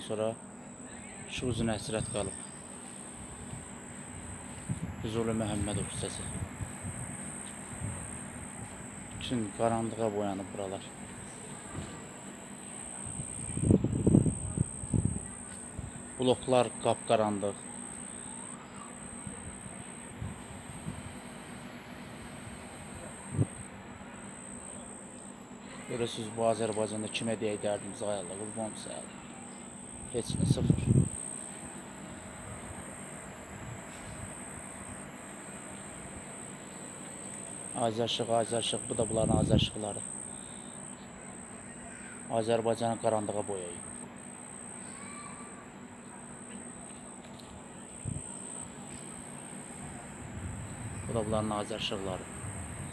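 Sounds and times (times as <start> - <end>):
crickets chirping: 0.0 - 52.9.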